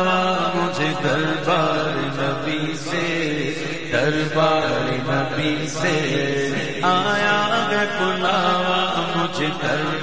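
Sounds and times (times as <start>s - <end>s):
man singing: 0.0s - 10.0s.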